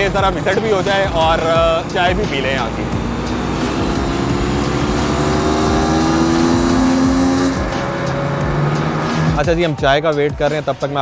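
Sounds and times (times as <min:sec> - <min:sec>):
dirt bike engine running: 0:00.0 - 0:09.4.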